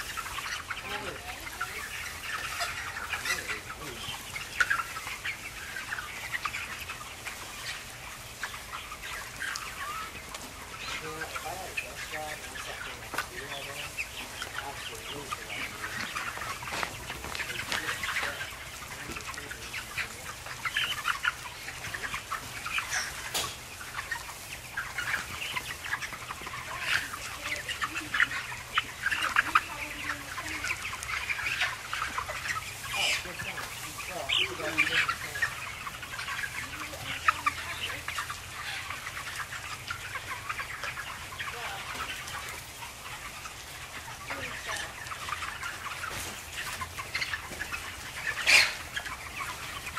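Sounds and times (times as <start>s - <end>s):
chickens chirping and clucking: 0.0s - 49.9s
loud chicken call: 48.2s - 49.9s.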